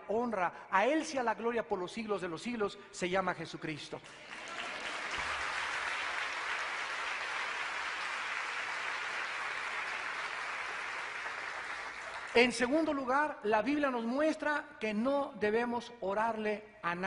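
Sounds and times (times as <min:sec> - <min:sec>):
congregation applauding: 0:04.0 - 0:12.7.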